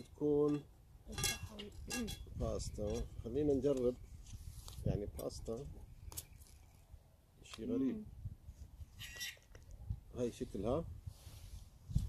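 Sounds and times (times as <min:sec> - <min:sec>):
wind rumble on microphone: 0:01.1 - 0:07.0, 0:07.9 - 0:12.0.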